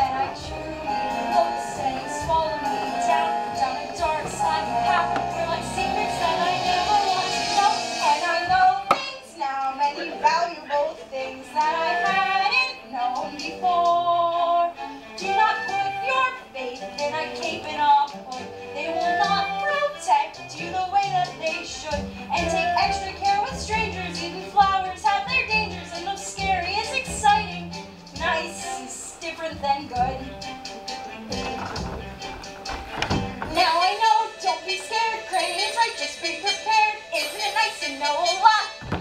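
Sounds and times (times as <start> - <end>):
instrumental accompaniment: 0.0 - 10.7, 11.3 - 39.0.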